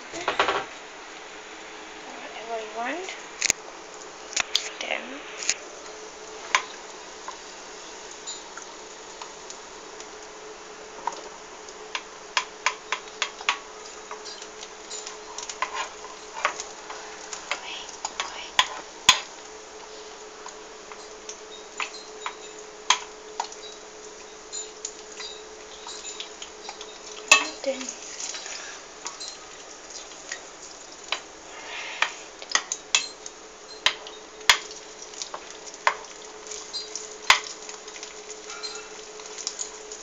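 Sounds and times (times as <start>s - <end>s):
egg sizzling in oil: 0.7s - 40.0s
wooden spoon scraping a pan: 14.1s - 19.3s, 25.9s - 29.4s, 31.4s - 32.4s.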